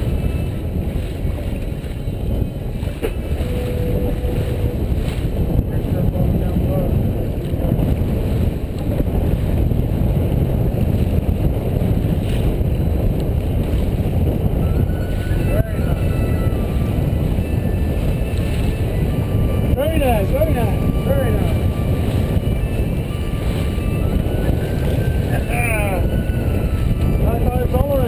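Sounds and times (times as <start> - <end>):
rushing water: 0.0 - 28.0
wind noise on microphone: 0.0 - 28.0.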